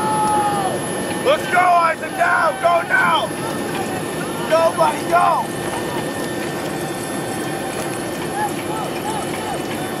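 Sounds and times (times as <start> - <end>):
constant low hum: 0.0 - 10.0
distant voices shouting: 0.0 - 10.0.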